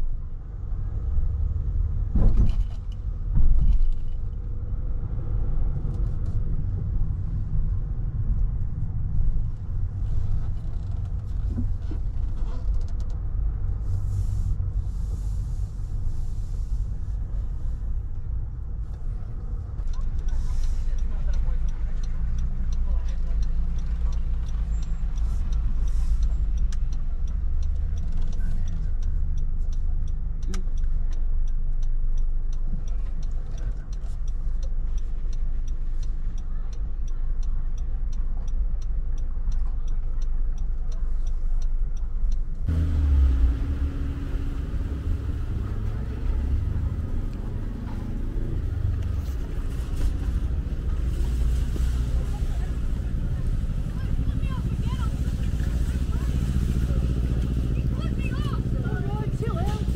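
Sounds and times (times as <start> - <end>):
car engine and tyres rumbling: 0.0 - 59.9
car park ambience: 0.0 - 59.9.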